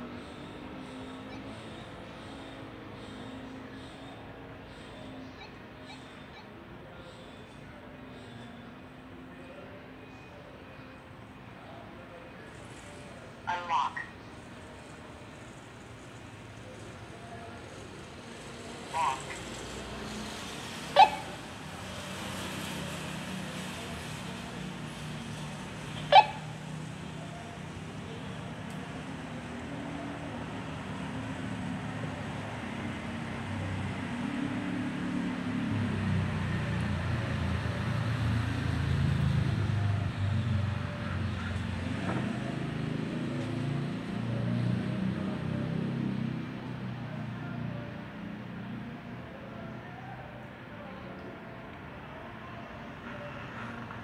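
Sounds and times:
vehicle engine rumbling: 14.2 - 45.8.

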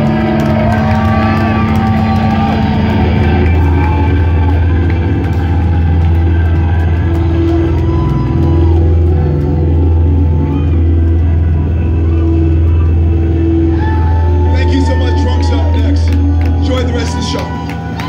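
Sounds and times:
bass guitar drone: 0.0 - 18.0
distorted electric guitar drone: 0.0 - 18.0.

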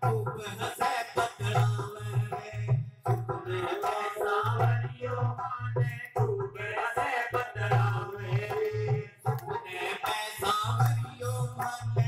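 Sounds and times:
hand drum beat: 0.0 - 9.6
man singing into a microphone: 0.0 - 12.0.

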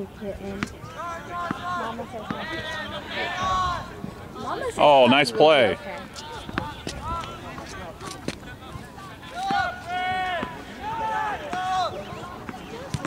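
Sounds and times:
people shouting and calling: 0.8 - 13.0.

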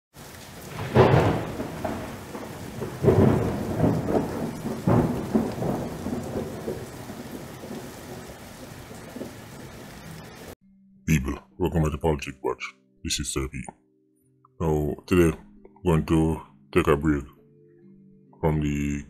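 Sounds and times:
rumbling crackling noise: 0.2 - 10.6.

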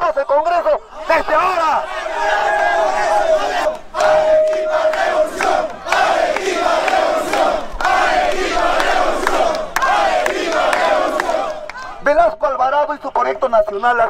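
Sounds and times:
crowd shouting and chanting: 0.0 - 12.3
short steady tone: 4.0 - 5.4.

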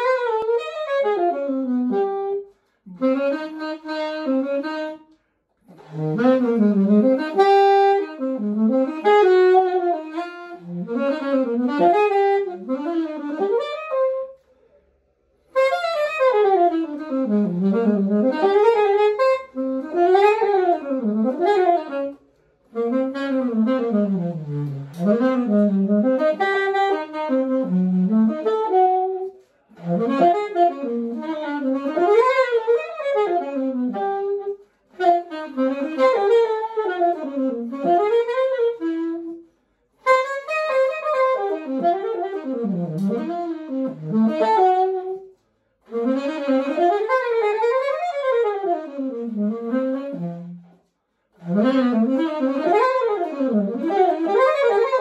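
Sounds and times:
solo saxophone melody: 0.0 - 14.5, 15.4 - 55.0.

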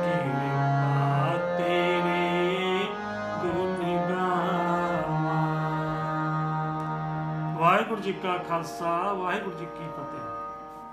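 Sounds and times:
man singing: 0.0 - 6.5, 7.4 - 10.6
harmonium playing: 0.0 - 10.9
man speaking: 7.6 - 10.5.

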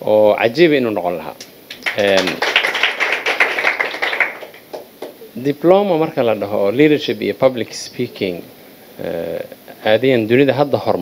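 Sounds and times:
audience applauding: 1.7 - 5.3.

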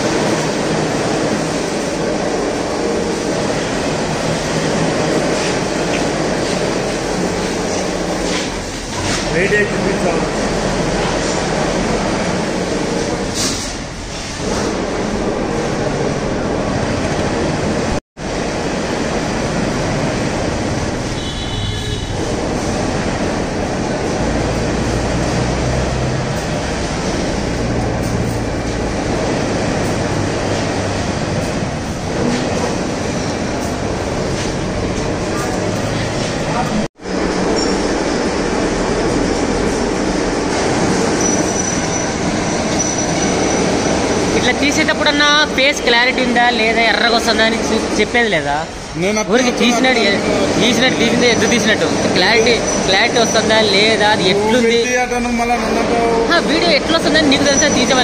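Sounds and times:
machinery rumble and clatter: 0.0 - 58.0.

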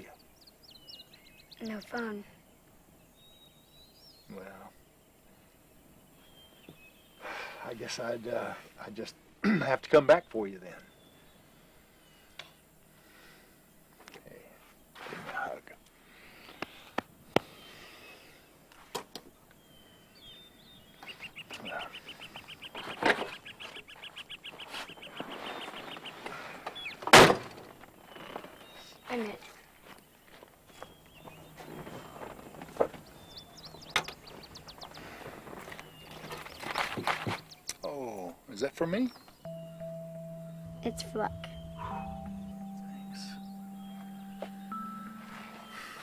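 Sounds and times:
birds chirping: 0.0 - 13.0, 19.4 - 46.0
loud thunk: 27.1 - 27.5.

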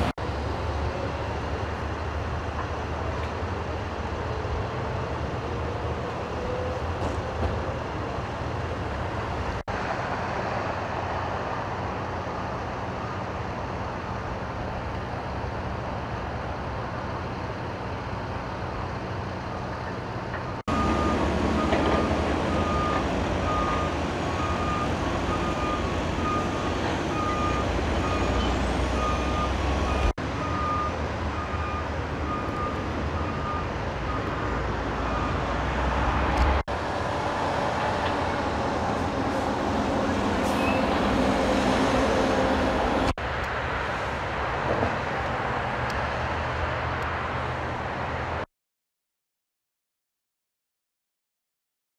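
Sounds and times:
heavy engines idling: 0.0 - 48.4
freeway traffic noise: 0.0 - 48.5
truck reversing beeper: 19.9 - 35.6, 39.2 - 41.5.

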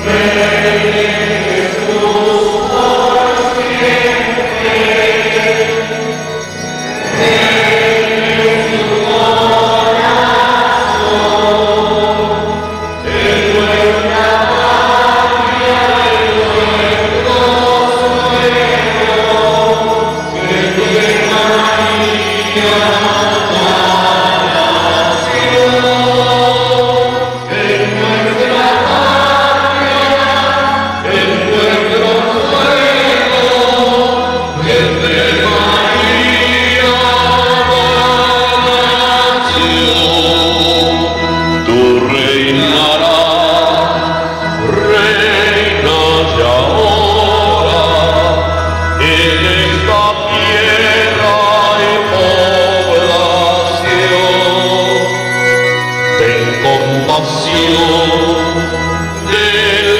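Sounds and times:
choir chanting: 0.0 - 59.9.

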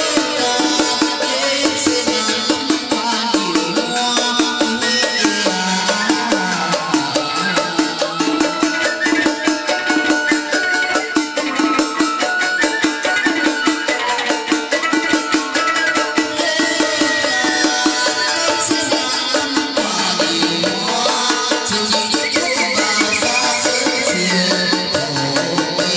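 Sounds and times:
clicking percussion beat: 0.0 - 25.9.

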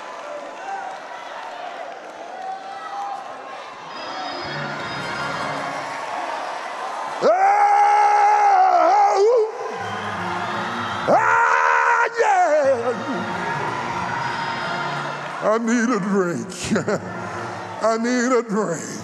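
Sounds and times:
background music: 4.0 - 19.0.

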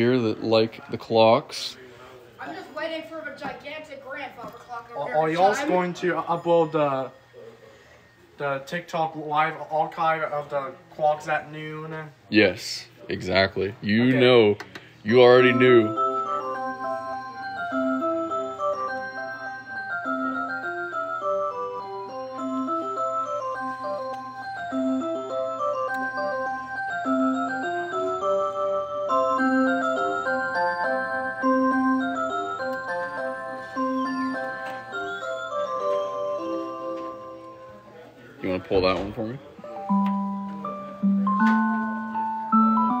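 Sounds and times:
electronic clock chime melody: 5.3 - 7.4, 15.1 - 39.0.

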